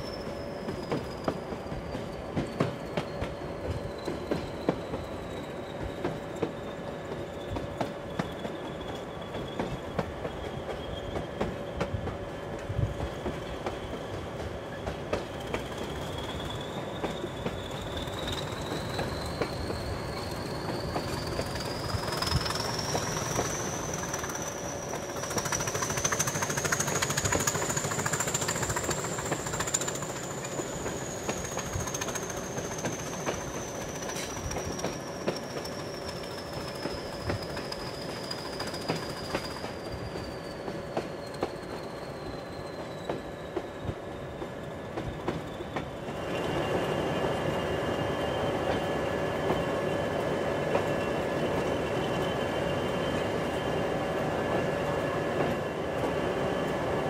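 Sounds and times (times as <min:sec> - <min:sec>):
diesel locomotive engine: 0:00.0 - 0:57.0.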